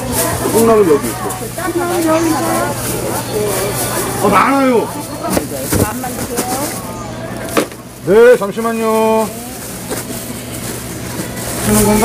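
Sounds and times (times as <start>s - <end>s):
faint background voices: 0.0s - 12.0s
plastic bags rustling: 0.0s - 12.0s.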